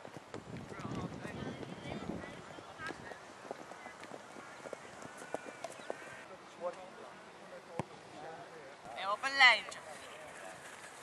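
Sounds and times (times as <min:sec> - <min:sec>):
running footsteps thuds: 0:00.0 - 0:06.2
distant players calling: 0:01.3 - 0:06.5.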